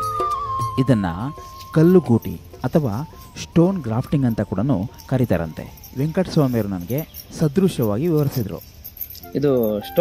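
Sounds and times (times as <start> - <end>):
person speaking: 0.8 - 10.0.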